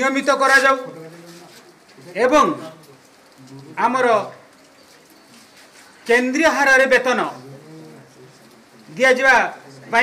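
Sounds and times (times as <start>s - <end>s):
man speaking: 0.0s - 2.9s, 3.5s - 4.4s, 6.1s - 10.0s.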